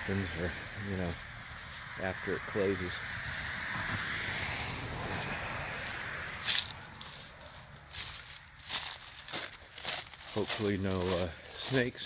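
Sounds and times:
foliage rustling: 0:00.0 - 0:12.0
footsteps on a path: 0:00.0 - 0:12.0.

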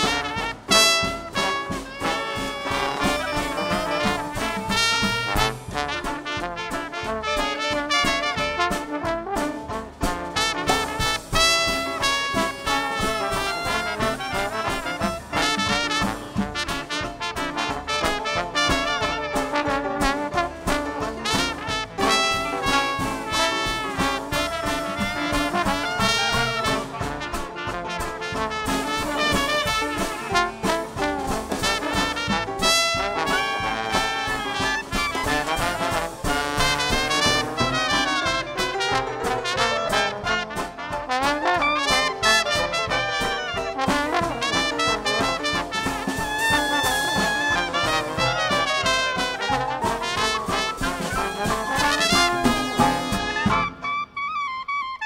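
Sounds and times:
banjo: 0:00.0 - 0:06.1, 0:11.4 - 0:28.1
clarinet: 0:00.0 - 0:55.0
drums: 0:00.0 - 0:55.0
trombone: 0:00.0 - 0:55.0
trumpet: 0:00.0 - 0:55.0.

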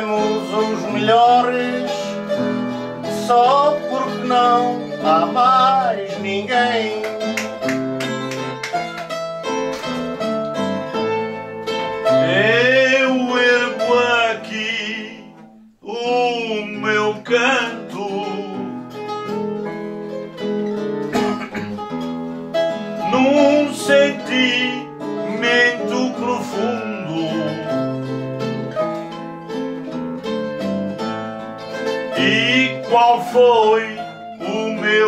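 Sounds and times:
man singing: 0:00.0 - 0:07.7, 0:12.0 - 0:19.0, 0:23.0 - 0:28.2, 0:31.8 - 0:35.0
plucked acoustic guitar: 0:00.0 - 0:35.0
plucked string instrument: 0:00.0 - 0:35.0.

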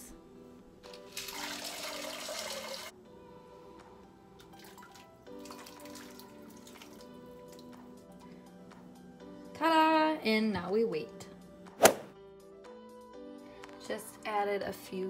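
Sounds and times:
background music: 0:00.0 - 0:15.0
beans pouring into broth: 0:01.0 - 0:02.9, 0:04.5 - 0:07.1.

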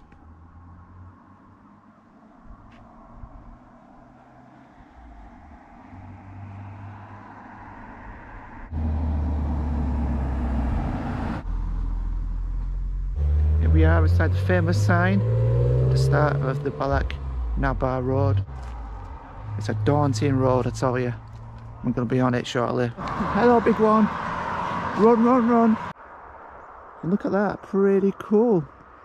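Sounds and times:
vehicle engine running: 0:15.9 - 0:24.2.

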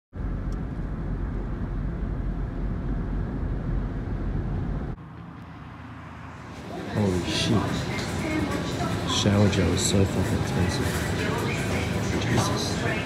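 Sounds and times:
car road and engine rumble: 0:00.1 - 0:13.0.

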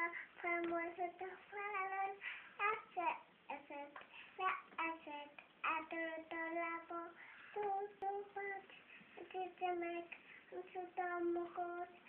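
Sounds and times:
child singing: 0:00.0 - 0:12.0.

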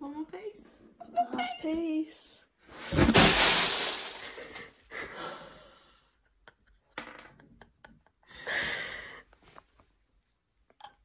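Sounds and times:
jigsaw puzzle crashing off table: 0:02.8 - 0:04.6
puzzle pieces clattering on floor: 0:02.8 - 0:04.7.

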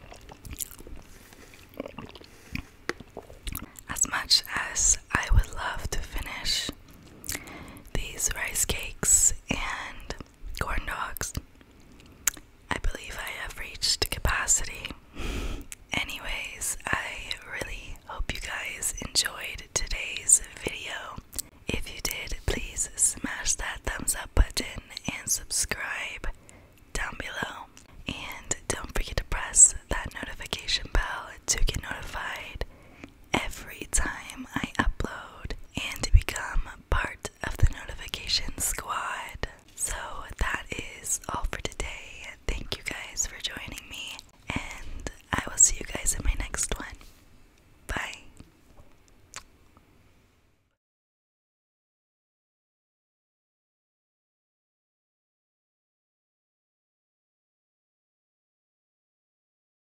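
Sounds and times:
small mouth clicks: 0:00.0 - 0:03.9, 0:07.2 - 0:07.5, 0:11.3 - 0:12.5, 0:21.2 - 0:21.5, 0:48.2 - 0:49.8
person whispering: 0:03.5 - 0:11.4, 0:12.7 - 0:15.0, 0:15.8 - 0:26.4, 0:27.0 - 0:32.7, 0:33.4 - 0:47.1, 0:47.9 - 0:48.4.

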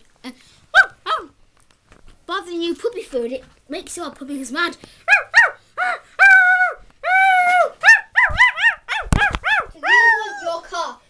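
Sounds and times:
child imitating dog woofs: 0:00.8 - 0:01.4, 0:05.1 - 0:10.7.

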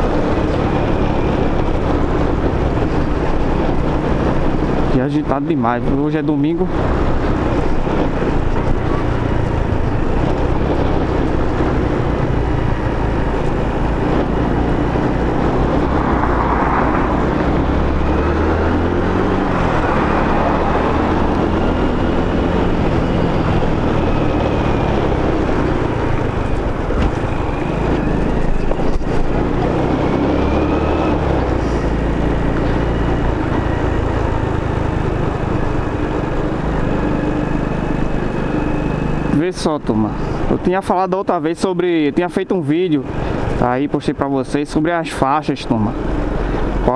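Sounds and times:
wind rush on microphone: 0:00.0 - 0:32.6
motorcycle engine running: 0:00.0 - 0:43.8.

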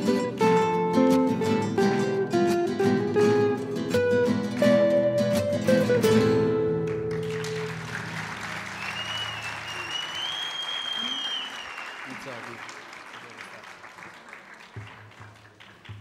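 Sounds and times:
audience applauding: 0:06.8 - 0:16.0
long whistle from crowd: 0:08.7 - 0:12.2.

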